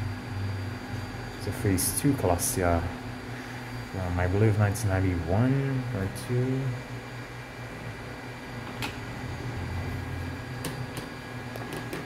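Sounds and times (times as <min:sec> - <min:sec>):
elevator humming: 0:00.0 - 0:12.0.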